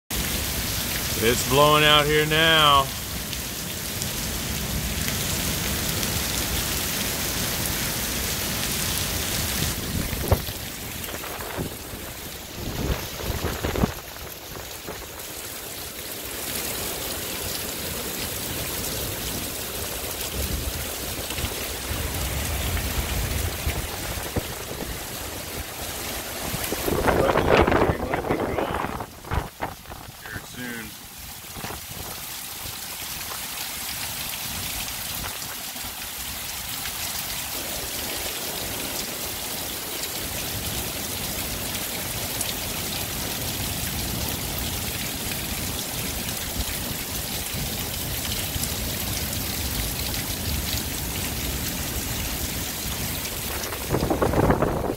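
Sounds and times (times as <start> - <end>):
heavy rain falling: 0.1 - 54.9
strong wind: 9.3 - 15.2, 20.3 - 30.4, 51.7 - 54.9.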